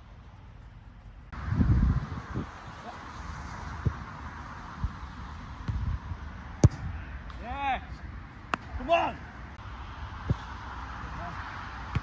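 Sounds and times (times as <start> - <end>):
wind on microphone: 1.3 - 7.2
football kicked thuds: 6.6 - 7.0
man shouting: 8.8 - 9.2.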